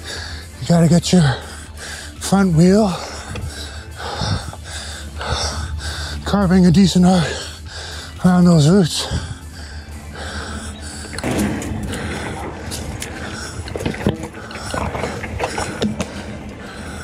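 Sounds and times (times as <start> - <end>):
bike rattles and knocks: 11.1 - 17.0.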